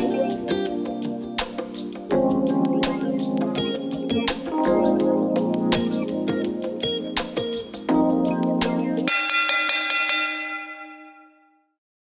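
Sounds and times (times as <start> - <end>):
alarm bell ringing: 9.1 - 11.6.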